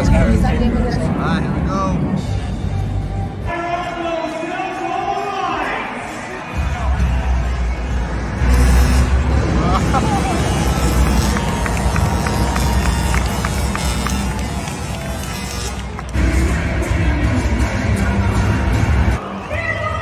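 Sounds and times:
bass-heavy music over sound system: 0:00.0 - 0:04.0, 0:06.4 - 0:19.2
crowd noise: 0:00.0 - 0:20.0.

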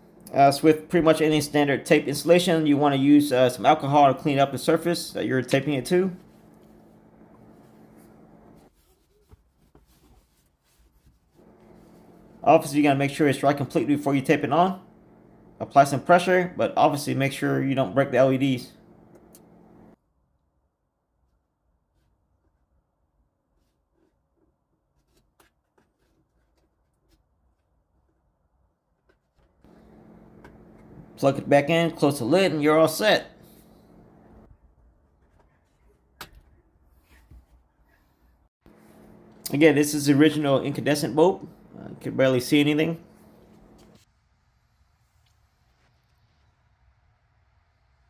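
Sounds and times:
low background hum: 0:00.0 - 0:20.0, 0:29.0 - 0:44.0
low hum: 0:04.0 - 0:08.7, 0:11.4 - 0:20.0, 0:29.7 - 0:32.6.

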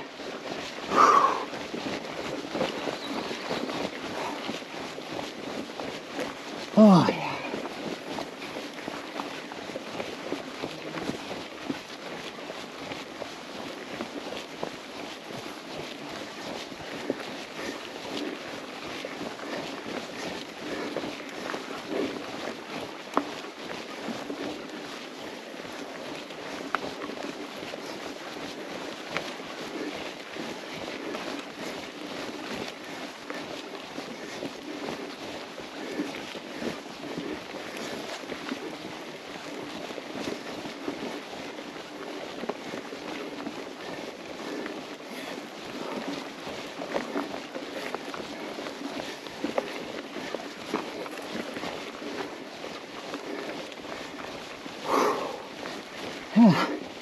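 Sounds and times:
bike tyres rolling on dirt: 0:00.0 - 0:57.0.

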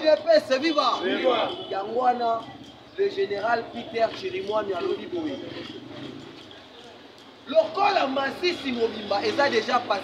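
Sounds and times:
man speaking outdoors: 0:00.0 - 0:10.0.

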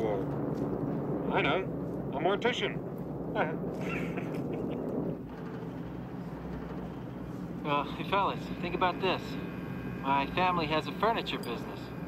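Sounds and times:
bomber plane engines droning: 0:00.0 - 0:12.0.

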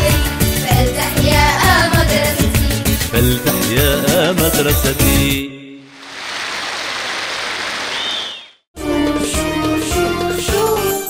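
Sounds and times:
crowd applauding: 0:06.0 - 0:08.5.

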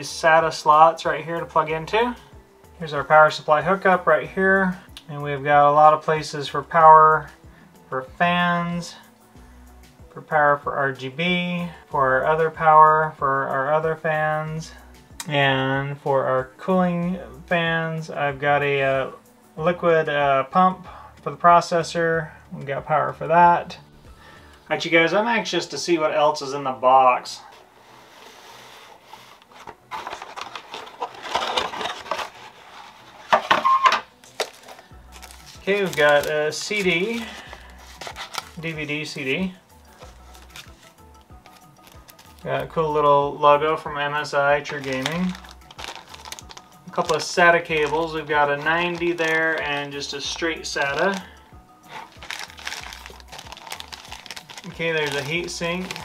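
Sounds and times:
cardboard scraping and rustling: 0:28.3 - 0:39.0, 0:51.8 - 0:56.0
sharp clicks and plastic crinkles: 0:29.4 - 0:32.5, 0:33.5 - 0:36.3, 0:44.7 - 0:47.3, 0:52.0 - 0:56.0.

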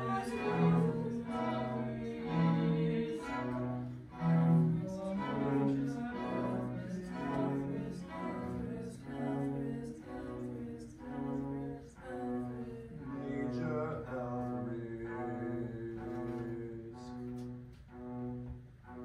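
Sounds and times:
string ensemble slow bowed notes: 0:00.0 - 0:19.0.

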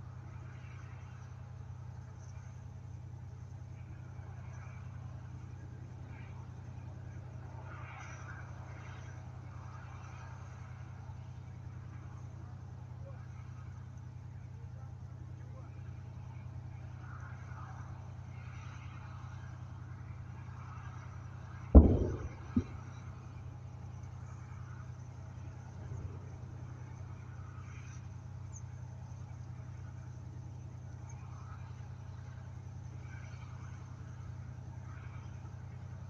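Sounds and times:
vehicle engine droning: 0:00.0 - 0:36.0
sharp loud bang: 0:21.8 - 0:22.8.

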